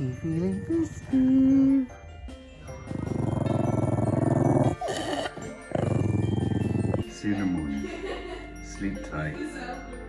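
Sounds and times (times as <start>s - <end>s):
background music: 0.0s - 10.0s
dog growling: 2.9s - 7.1s.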